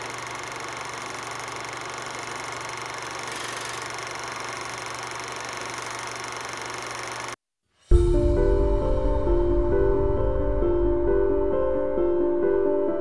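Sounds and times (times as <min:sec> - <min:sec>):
low hum: 0:07.9 - 0:12.8.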